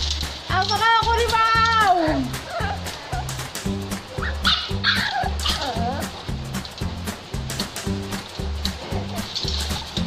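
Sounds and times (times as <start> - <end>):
background music with beat: 0.0 - 10.0
puppy whining: 2.1 - 6.2.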